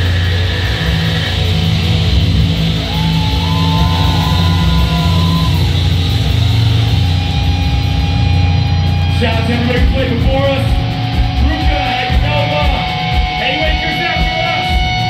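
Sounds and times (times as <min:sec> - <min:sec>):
electric guitar bending notes: 0:00.0 - 0:15.0
heavy metal band playing live: 0:00.0 - 0:15.0.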